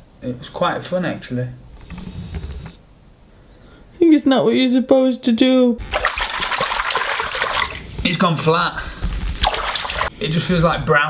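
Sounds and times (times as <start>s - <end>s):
liquid sloshing in a bathtub: 5.8s - 8.1s, 9.2s - 10.1s.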